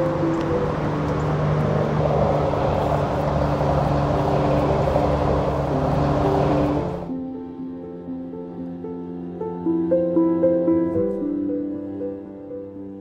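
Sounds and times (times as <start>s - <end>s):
outdoor rushing noise: 0.0s - 7.1s
soft background music: 0.0s - 13.0s.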